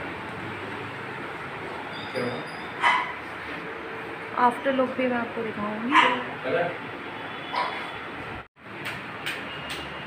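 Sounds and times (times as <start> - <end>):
dog barking: 2.8 - 3.2, 5.9 - 6.3, 7.5 - 7.9.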